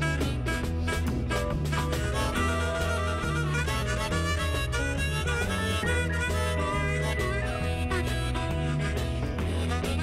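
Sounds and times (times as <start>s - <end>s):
harmonica solo with bending notes: 0.0s - 10.0s
live band playing: 0.0s - 10.0s.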